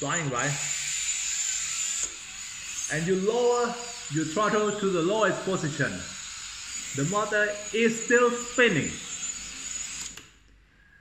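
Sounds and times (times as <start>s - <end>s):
drone motors high whine: 0.0s - 10.3s.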